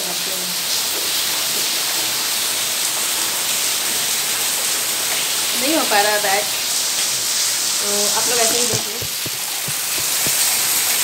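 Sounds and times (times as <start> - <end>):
heavy rain pouring: 0.0 - 11.0.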